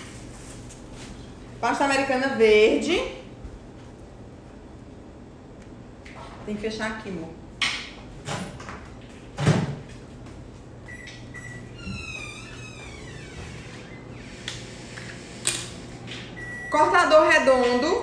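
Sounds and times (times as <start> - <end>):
microwave oven humming: 0.0 - 18.0.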